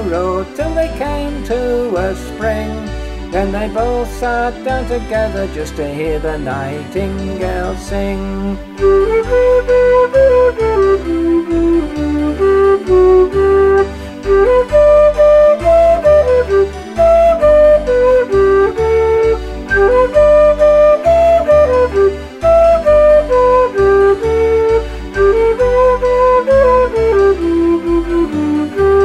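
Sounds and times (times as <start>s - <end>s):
flute-like woodwind folk melody: 0.0s - 29.0s
low rhythmic bass: 0.0s - 29.0s.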